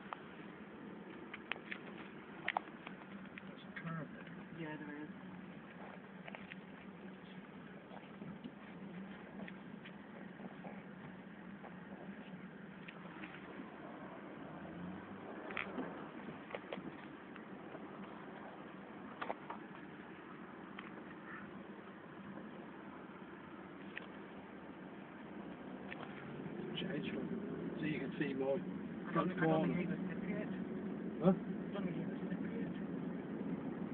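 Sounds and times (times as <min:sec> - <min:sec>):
road and engine noise inside car: 0:00.0 - 0:33.9.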